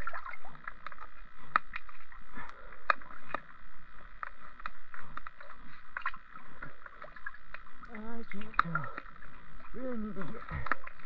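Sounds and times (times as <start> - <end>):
underwater clicks and gurgles: 0.0 - 11.0
voice muffled by water: 7.8 - 11.0.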